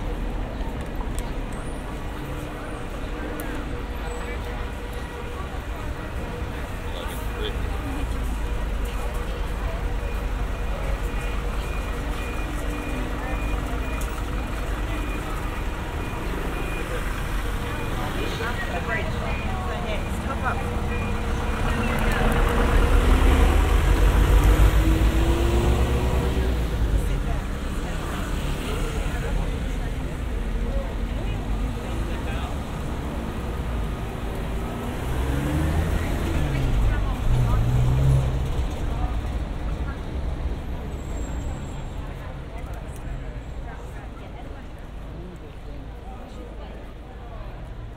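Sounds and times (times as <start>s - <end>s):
people talking: 0.0s - 47.9s
vans driving past: 0.0s - 47.9s.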